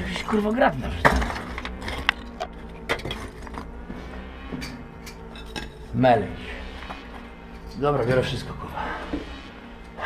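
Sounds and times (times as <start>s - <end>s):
low steady rumble: 0.0s - 10.0s
rubble knocking and clinking: 0.8s - 5.8s.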